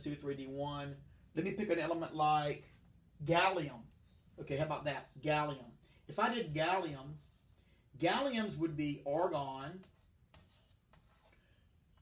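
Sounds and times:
chalk scratching on blackboard: 6.3s - 8.6s, 9.2s - 11.4s.

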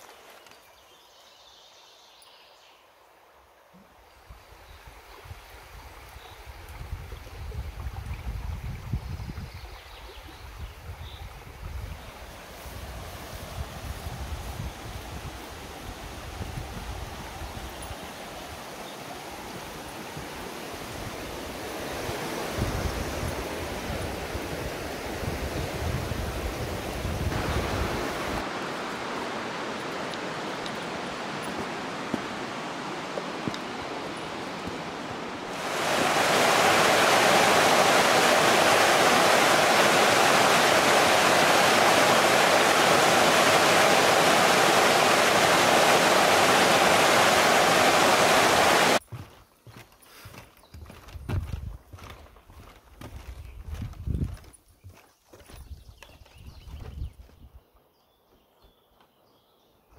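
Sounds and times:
river water rushing over weir: 14.7s - 49.0s
footsteps on wooden planks: 31.4s - 35.2s, 49.0s - 57.5s.

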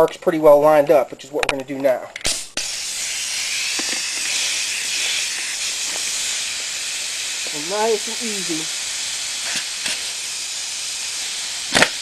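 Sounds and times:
steady air hiss: 0.0s - 12.0s
air impact wrench burst: 2.2s - 12.0s.

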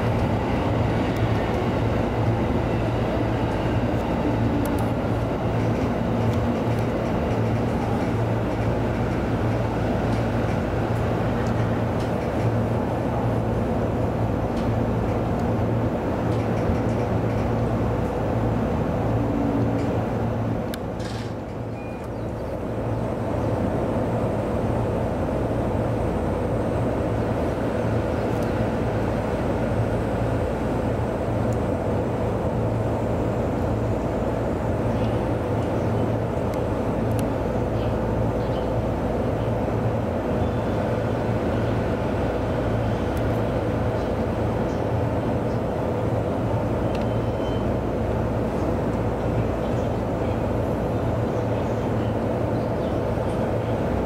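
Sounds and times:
electric train equipment hum: 0.0s - 54.0s.

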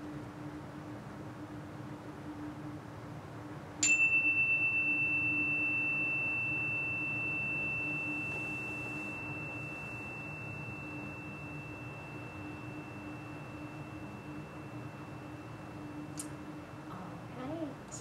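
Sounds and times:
chime ringing: 3.8s - 16.6s.

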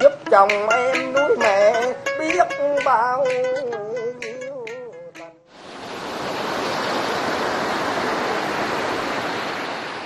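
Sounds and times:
sea waves breaking on beach: 5.5s - 10.0s.

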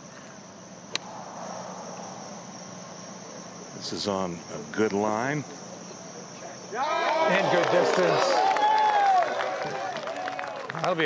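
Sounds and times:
insects droning: 0.0s - 11.0s
golf club striking ball: 0.9s - 1.2s.

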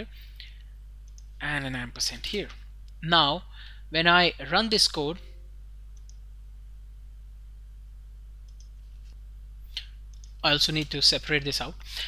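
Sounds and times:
low electrical hum: 0.0s - 12.0s
computer mouse clicks: 1.0s - 1.3s, 6.0s - 6.2s, 8.4s - 9.2s, 9.8s - 11.0s.

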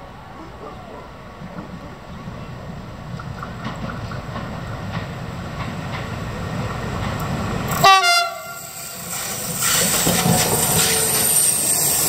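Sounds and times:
train wheels rumbling on rails: 0.1s - 12.0s
locomotive horn blast: 7.8s - 8.9s.

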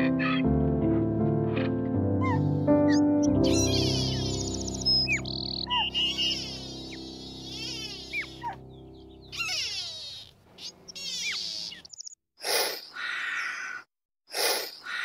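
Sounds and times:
held low music tone: 0.2s - 9.4s
high quick chirping calls: 2.9s - 13.6s.

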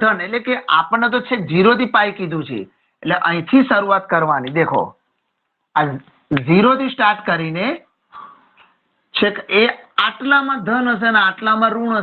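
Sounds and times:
man speaking: 0.0s - 5.0s, 5.8s - 7.9s.

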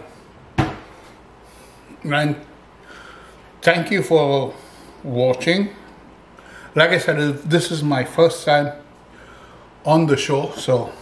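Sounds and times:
hard knock: 0.6s - 0.9s.

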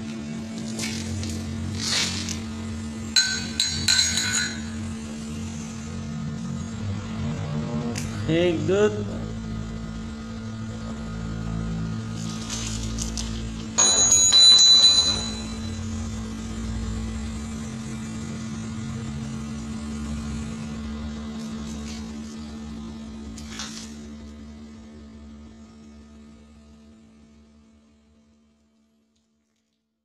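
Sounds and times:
electrical hum: 0.0s - 29.0s
loud high-pitched ringing: 1.8s - 21.4s.

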